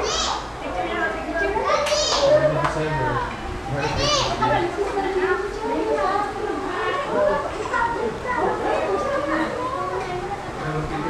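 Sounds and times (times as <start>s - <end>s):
children squealing: 0.0s - 0.5s, 1.6s - 4.5s
people chattering excitedly: 0.0s - 11.0s.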